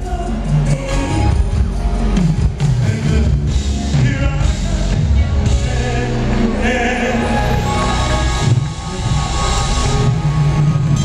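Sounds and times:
live band music over loudspeakers: 0.0 - 11.0.

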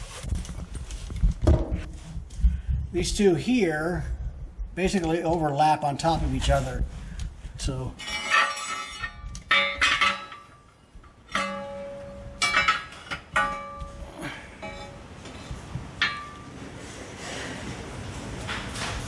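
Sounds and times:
steel brackets clinking: 8.0 - 16.8.

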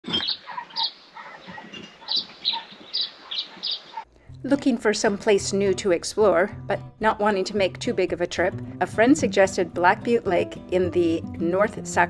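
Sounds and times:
birds chirping: 0.0 - 4.1.

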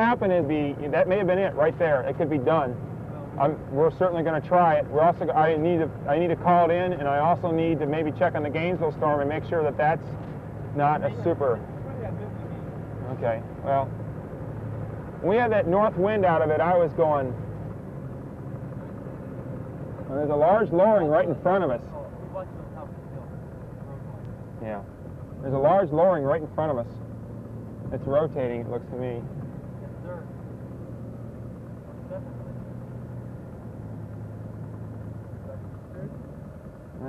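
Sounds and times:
car engine and road hum: 0.0 - 37.0.

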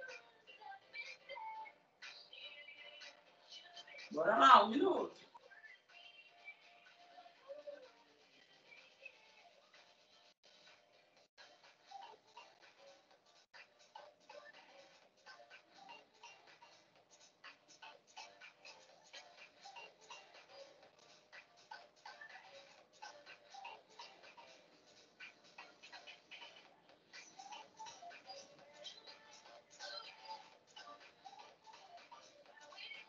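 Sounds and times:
faint music with ticking beat: 0.0 - 33.0.

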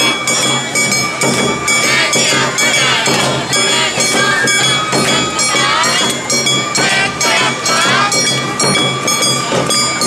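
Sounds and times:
drums beating steady rhythm: 0.0 - 10.0
high held ringing notes: 0.0 - 10.0.

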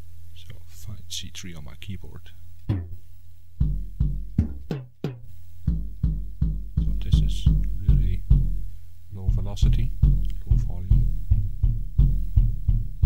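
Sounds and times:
kick drum hits: 3.6 - 5.1, 5.7 - 8.6, 9.3 - 13.0.

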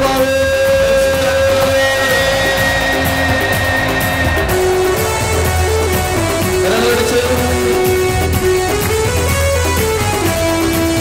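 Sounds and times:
low bass line: 0.0 - 11.0.

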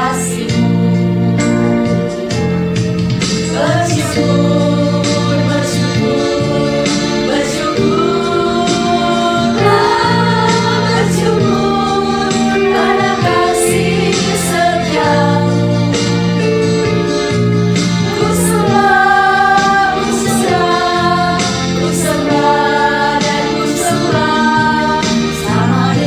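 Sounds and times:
women singing together: 0.0 - 0.9, 3.5 - 16.2, 18.0 - 26.0
instrumental accompaniment chords: 0.0 - 26.0.

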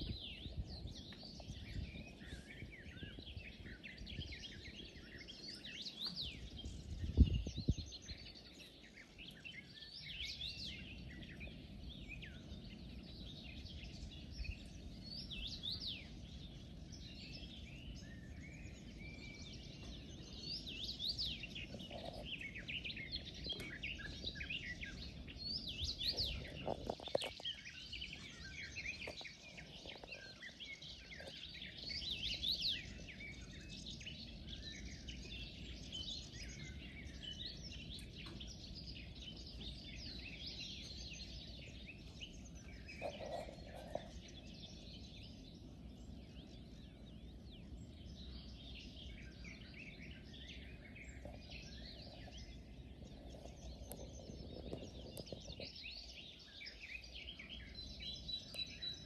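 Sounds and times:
birds chirping: 0.0 - 59.0.

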